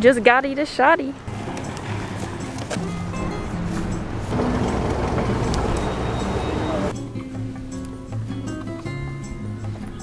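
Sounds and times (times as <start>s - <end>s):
background music with held notes: 1.3s - 10.0s.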